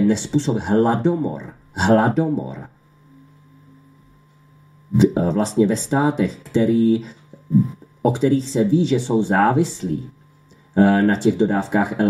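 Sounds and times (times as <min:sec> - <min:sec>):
man speaking: 0:00.0 - 0:02.8, 0:04.9 - 0:10.1, 0:10.8 - 0:12.0
faint low hum: 0:00.0 - 0:12.0.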